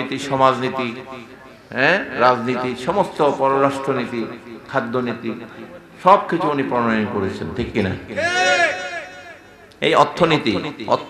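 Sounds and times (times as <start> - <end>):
man's high-pitched call: 8.2 - 9.7.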